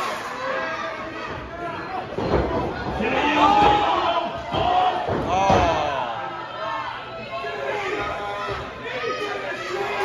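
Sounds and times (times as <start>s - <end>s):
crowd shouting: 0.0s - 2.0s, 2.7s - 10.0s.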